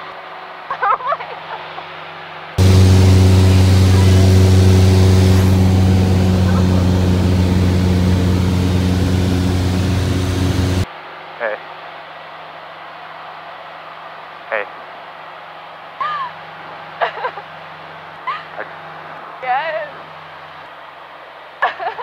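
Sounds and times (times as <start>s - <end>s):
light aircraft engine drone: 2.6s - 10.9s.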